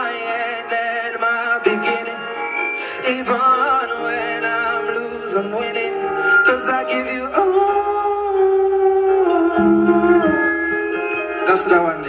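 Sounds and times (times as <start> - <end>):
man singing into a microphone: 0.0 - 10.5, 11.4 - 12.0.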